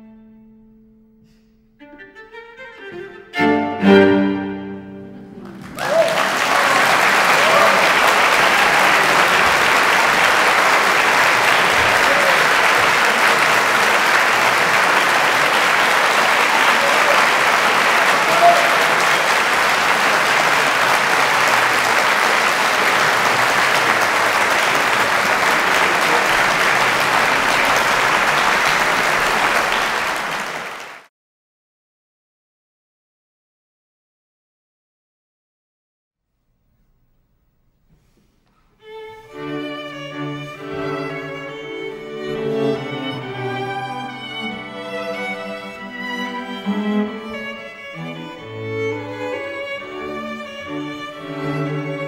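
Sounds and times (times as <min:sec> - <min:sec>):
audience applauding: 0:05.1 - 0:31.1, 0:40.4 - 0:52.0
people shouting: 0:05.8 - 0:09.2, 0:18.2 - 0:19.0.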